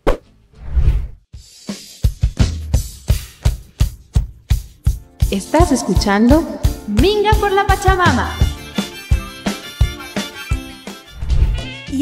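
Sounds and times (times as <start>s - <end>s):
drum-beat music: 1.4s - 11.8s.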